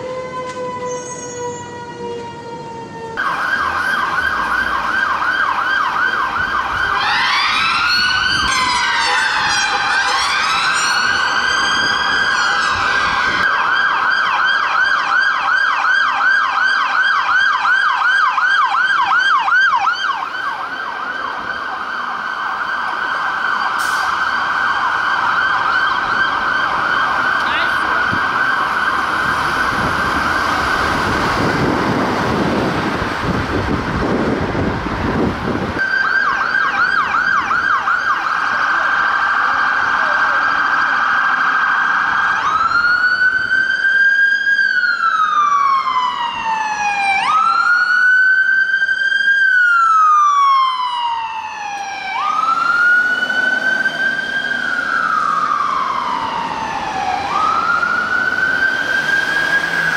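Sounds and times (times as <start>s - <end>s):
siren wailing in slow sweeps: 0.0s - 34.8s, 35.8s - 59.9s
fire engine siren yelping: 0.0s - 59.9s.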